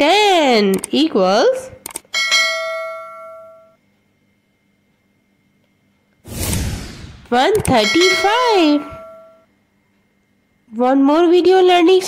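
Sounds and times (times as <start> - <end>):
bright bell ding: 7.7 - 9.4.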